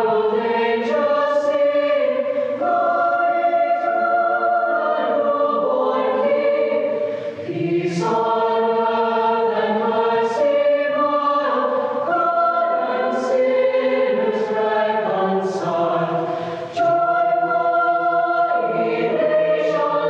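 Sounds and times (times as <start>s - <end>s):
choir singing sustained chords: 0.0s - 20.0s.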